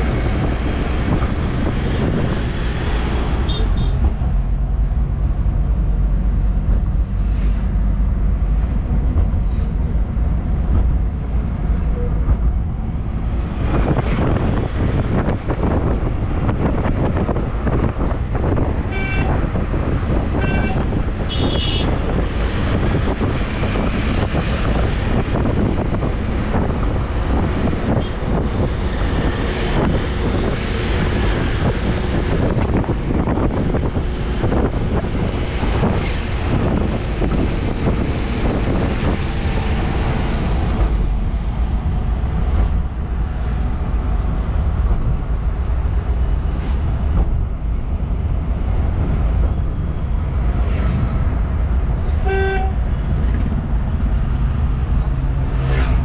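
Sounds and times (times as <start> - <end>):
road and engine noise: 0.0 - 56.0
wind on microphone: 0.0 - 56.0
car horn toots: 3.5 - 4.1, 18.9 - 19.4, 20.4 - 22.0, 52.2 - 52.8.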